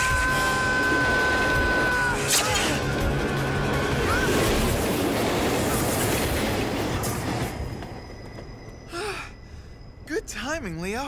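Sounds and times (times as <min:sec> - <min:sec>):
subway train passing: 0:02.8 - 0:08.9.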